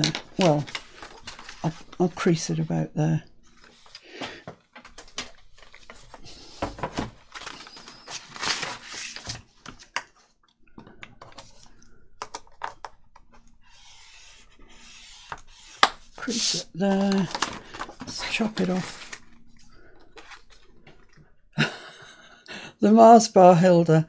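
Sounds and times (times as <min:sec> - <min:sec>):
paper rustling and sliding: 0:00.0 - 0:02.3, 0:03.5 - 0:10.3, 0:13.6 - 0:19.3, 0:20.1 - 0:21.1.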